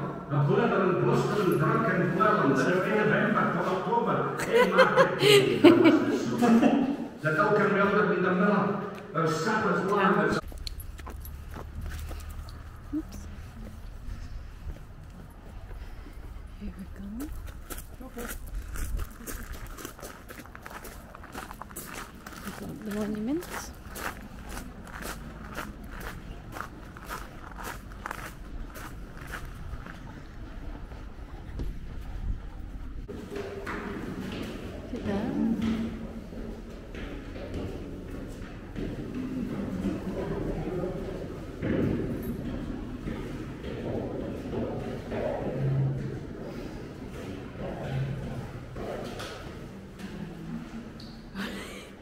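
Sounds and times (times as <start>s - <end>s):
footsteps on garden path: 10.4s - 30.2s
wind rumbling on microphone: 12.6s - 21.2s, 25.8s - 33.1s.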